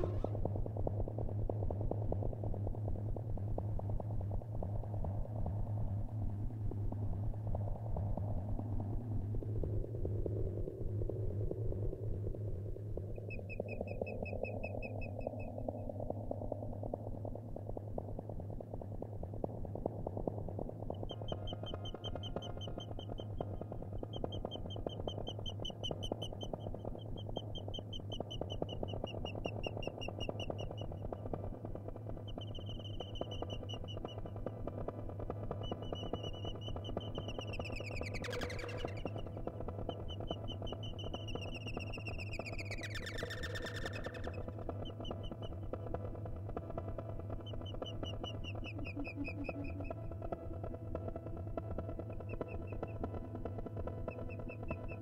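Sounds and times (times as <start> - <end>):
rough low noise: 0.0 - 1.4
steady low hum: 0.0 - 42.9.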